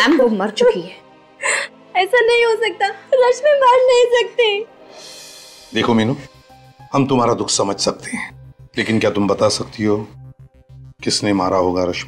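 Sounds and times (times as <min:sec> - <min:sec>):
woman sobbing: 0:01.4 - 0:01.8.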